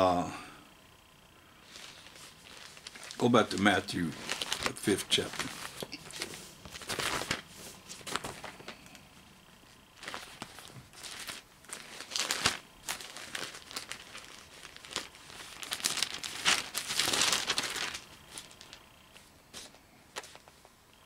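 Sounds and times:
book pages rustling: 1.6s - 9.0s, 9.6s - 20.8s.

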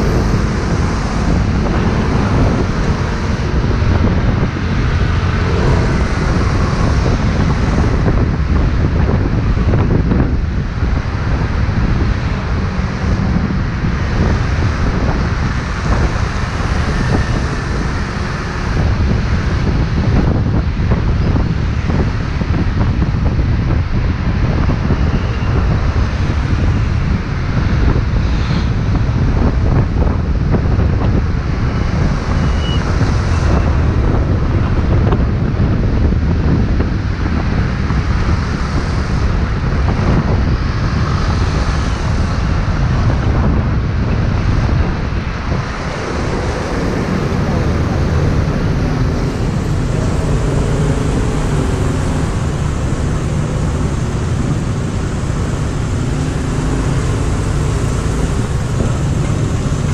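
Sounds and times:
city traffic: 0.0s - 59.9s
wind buffeting microphone: 0.0s - 59.9s
scooter engine: 45.4s - 59.9s.

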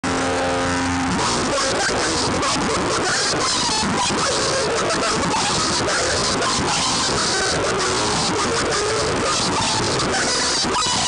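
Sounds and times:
noisy electric guitar: 0.0s - 11.0s.

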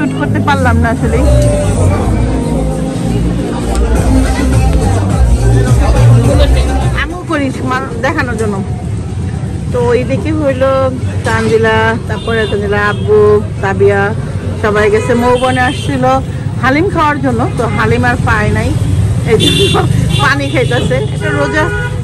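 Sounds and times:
vehicle humming: 0.0s - 12.1s
song with singing voice: 1.0s - 7.2s.

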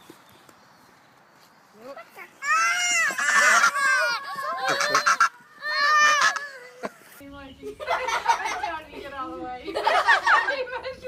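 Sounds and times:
goose honking: 3.1s - 6.4s.

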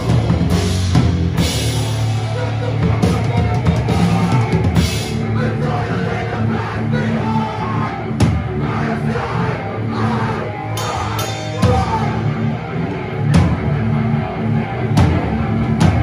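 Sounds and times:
heavy rock band playing loud: 0.0s - 16.0s.

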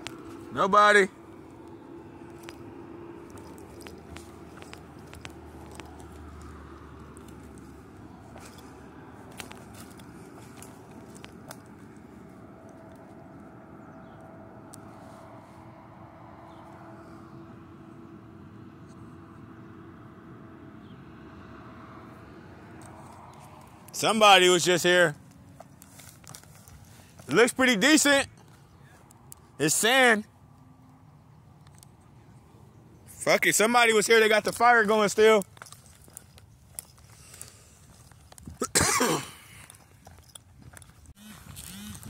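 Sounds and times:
footsteps crunching and rustling: 1.2s - 13.6s, 22.8s - 29.5s, 33.9s - 42.0s.

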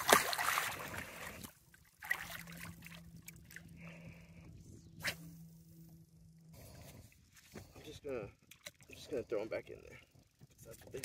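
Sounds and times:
sharp splashes: 0.0s - 3.6s
water splashing against a boat: 0.0s - 3.8s
faint steady hum: 0.0s - 11.0s.

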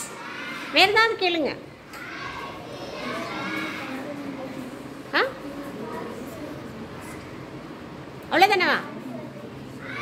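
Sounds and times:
children chattering faintly: 0.0s - 10.0s.

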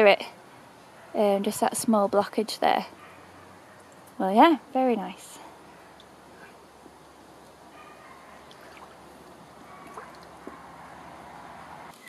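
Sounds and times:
brook water flowing: 5.5s - 11.9s.

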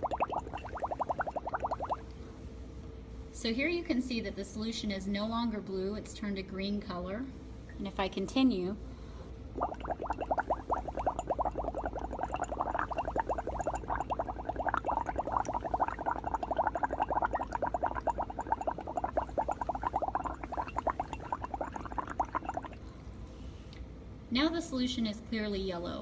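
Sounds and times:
blowing bubbles through straw: 0.0s - 2.0s, 9.6s - 22.8s.

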